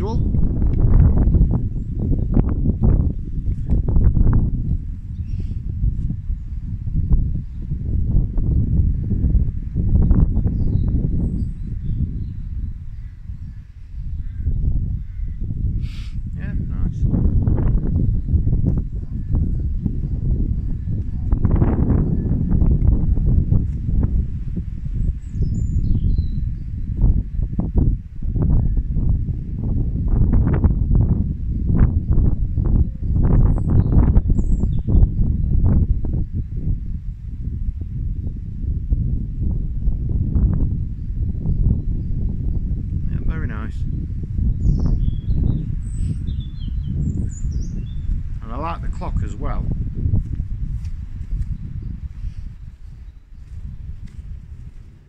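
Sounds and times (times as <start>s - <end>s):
wind buffeting microphone: 0.0s - 55.0s
faint birds chirping: 10.0s - 22.5s, 24.9s - 27.6s, 41.0s - 49.1s.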